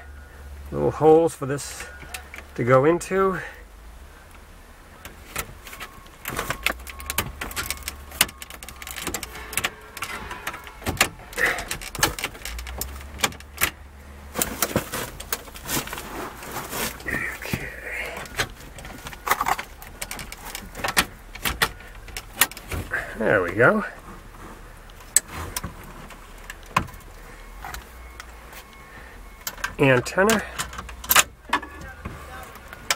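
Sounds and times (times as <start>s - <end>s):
metal keys clicking and scraping: 5.8s - 13.7s, 18.2s - 22.7s.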